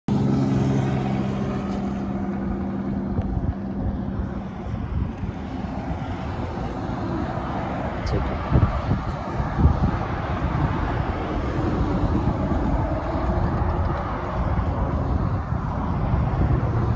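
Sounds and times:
highway traffic passing: 0.1s - 16.9s
vehicle engine hum: 0.1s - 16.9s.

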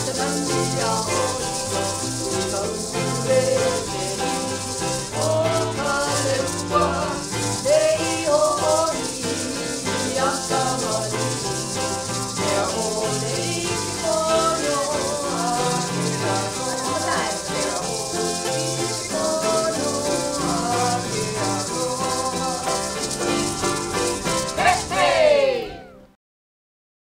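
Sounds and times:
gourd rattles shaking: 0.0s - 25.4s
person singing wavering melody: 0.0s - 25.6s.

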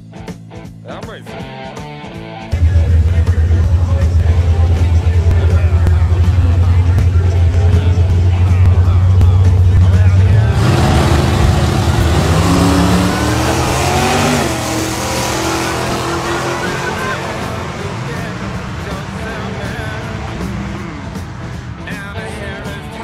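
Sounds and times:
pickup truck engines rumbling: 2.5s - 23.0s.

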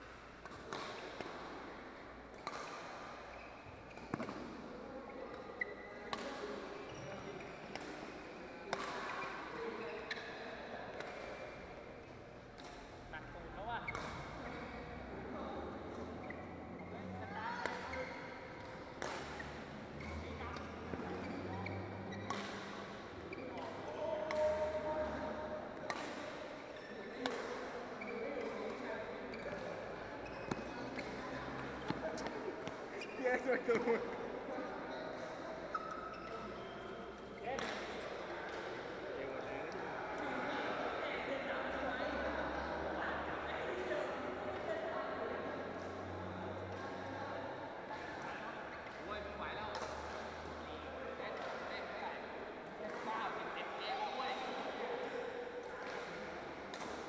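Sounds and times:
voices in a hall: 0.0s - 57.0s
rackets hitting shuttlecock: 0.1s - 3.3s, 3.9s - 4.6s, 7.7s - 11.7s, 17.6s - 19.7s, 22.1s - 27.8s, 28.4s - 34.0s, 37.6s - 39.0s, 55.6s - 57.0s.

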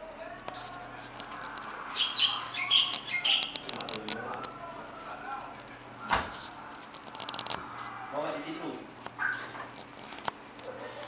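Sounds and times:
small birds chirping: 1.9s - 3.7s.

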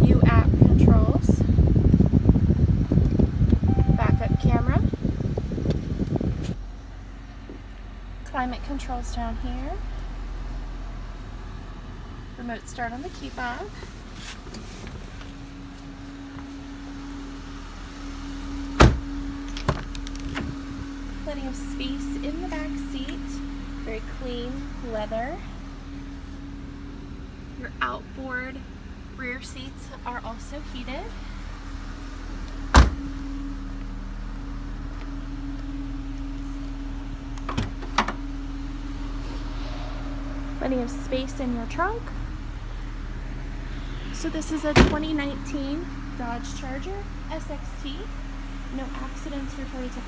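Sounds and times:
steady hum: 0.0s - 14.1s, 15.4s - 50.0s
car door shutting: 18.8s - 20.6s, 32.7s - 33.1s, 37.4s - 38.2s.

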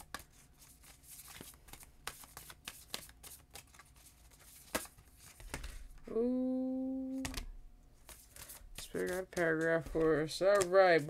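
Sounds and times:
cards flicking and snapping: 0.0s - 5.8s
person saying ooh: 6.1s - 7.4s.

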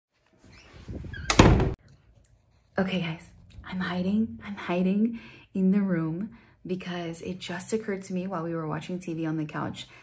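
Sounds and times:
door shutting: 0.5s - 1.8s.

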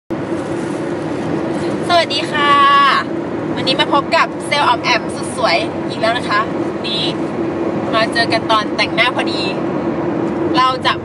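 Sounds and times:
constant low hum: 0.1s - 11.0s
road and engine noise in car: 0.1s - 11.0s.

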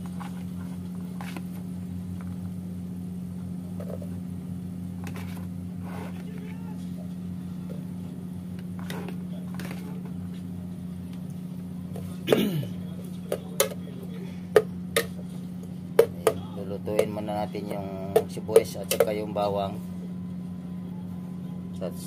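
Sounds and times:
low hum: 0.0s - 22.0s.

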